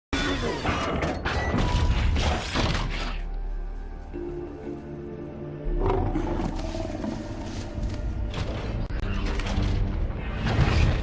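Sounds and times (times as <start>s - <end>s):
low orchestral music drone: 2.9s - 11.0s.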